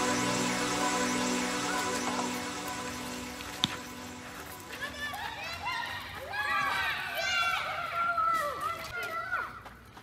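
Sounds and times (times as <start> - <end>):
background music: 0.0 - 6.6
children shouting as they play: 4.7 - 9.6.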